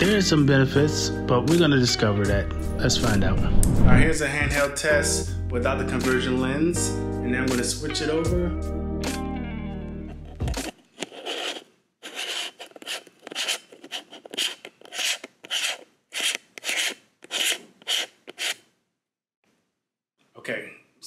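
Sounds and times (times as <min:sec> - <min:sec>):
fingers rubbing and scraping lens: 0:10.0 - 0:18.6.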